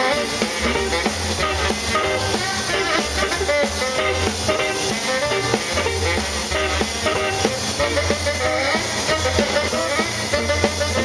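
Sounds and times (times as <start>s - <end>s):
drum kit beat: 0.0s - 11.0s
tenor saxophone lead: 0.0s - 11.0s
walking double bass: 0.0s - 11.0s.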